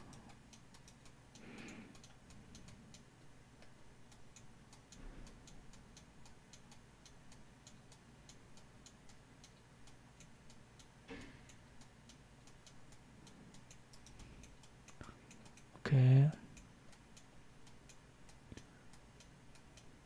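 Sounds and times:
faint rapid ticking: 0.0 - 20.0.

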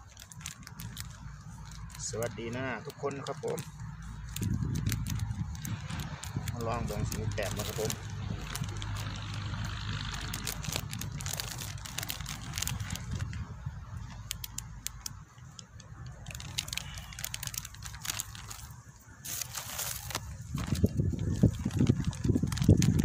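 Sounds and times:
plastic packets crinkling: 0.0 - 23.0
low steady rumble: 3.6 - 23.0.

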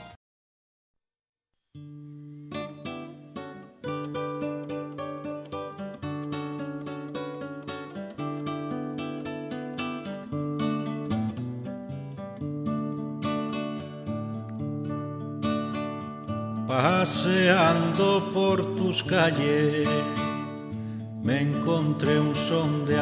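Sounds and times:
acoustic guitar plucked and strummed: 1.7 - 23.0.

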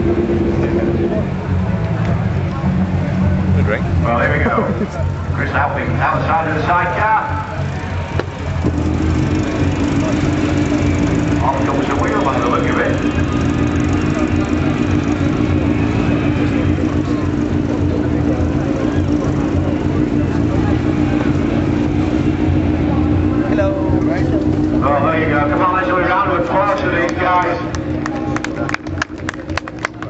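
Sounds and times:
motorcycle engine running steadily: 0.0 - 30.0.

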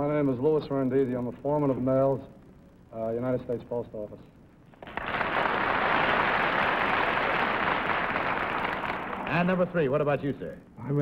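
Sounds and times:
audience applauding: 4.8 - 9.8.

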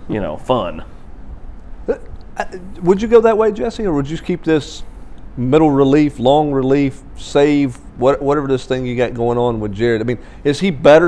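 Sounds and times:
men talking: 0.0 - 1.0, 1.8 - 11.0.

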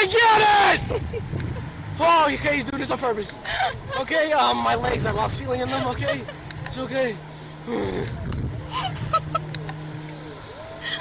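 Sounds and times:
low hum: 0.0 - 11.0
young woman laughing: 0.8 - 1.7, 5.5 - 6.5, 8.6 - 9.6.

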